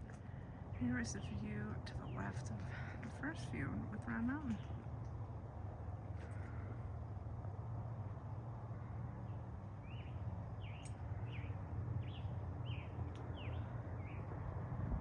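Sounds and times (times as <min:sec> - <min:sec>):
songbird chirping: 0:00.0 - 0:05.6, 0:08.7 - 0:14.5
steady low rumble: 0:00.0 - 0:15.0.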